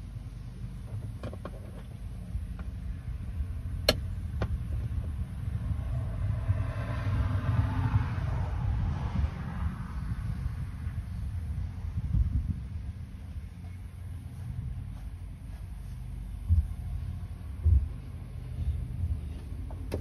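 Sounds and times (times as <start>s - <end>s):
low rumble: 1.8s - 20.0s
vehicle passing: 5.0s - 19.9s.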